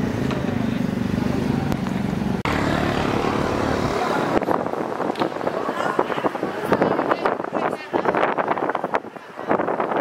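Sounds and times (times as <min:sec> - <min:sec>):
vehicle engine running: 0:00.0 - 0:05.0.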